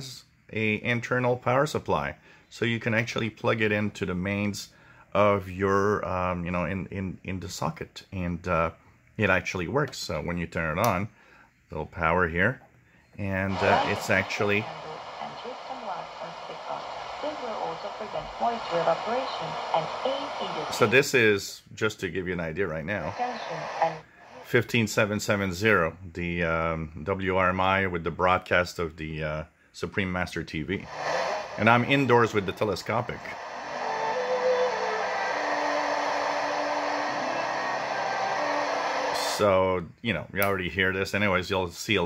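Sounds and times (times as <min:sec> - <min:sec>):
static hiss: 0:00.0 - 0:03.2, 0:13.2 - 0:21.7, 0:22.8 - 0:25.9, 0:30.7 - 0:39.6
voice over radio: 0:13.4 - 0:21.4, 0:22.8 - 0:24.9, 0:30.8 - 0:33.5, 0:39.2 - 0:39.5.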